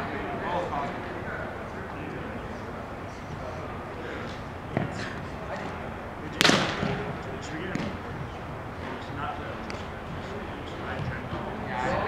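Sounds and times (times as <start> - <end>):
murmur of voices: 0.0 - 12.0
ball being struck: 6.4 - 8.0.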